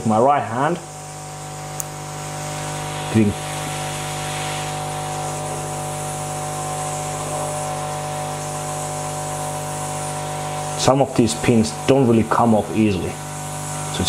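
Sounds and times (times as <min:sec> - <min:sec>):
hot air soldering station hum: 0:00.0 - 0:14.0.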